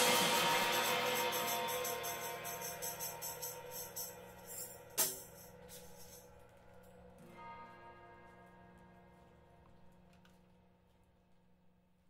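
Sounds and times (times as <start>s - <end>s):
sharp percussion hit: 0.0s - 6.2s.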